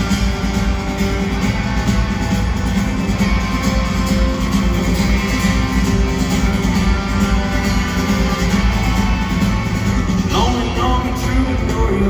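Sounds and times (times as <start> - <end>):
live country-rock band: 0.0 - 12.0.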